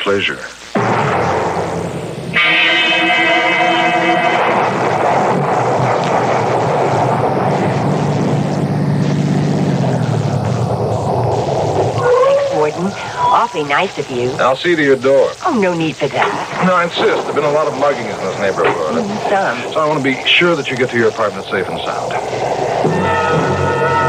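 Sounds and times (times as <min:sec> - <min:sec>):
low drone: 0:00.8 - 0:14.5, 0:16.2 - 0:24.0
rain: 0:02.4 - 0:24.0.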